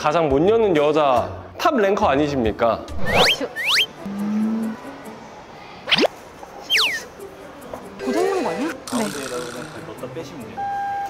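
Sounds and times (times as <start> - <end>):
rising whistle: 2.9 - 4.0
whistles swooping down: 2.9 - 4.0.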